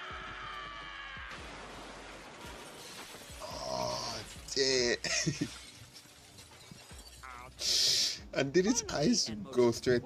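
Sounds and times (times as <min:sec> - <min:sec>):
man laughing: 0:05.0 - 0:05.7.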